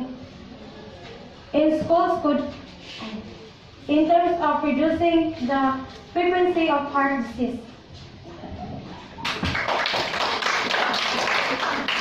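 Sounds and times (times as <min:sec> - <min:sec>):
roomful of people clapping: 0:09.2 - 0:12.0.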